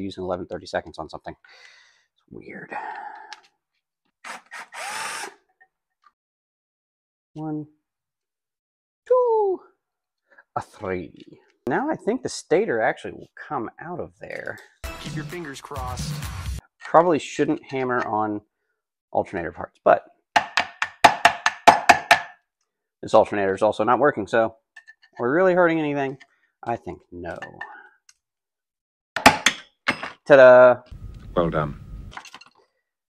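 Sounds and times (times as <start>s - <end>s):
cordless drill whine: 4.2s - 5.4s.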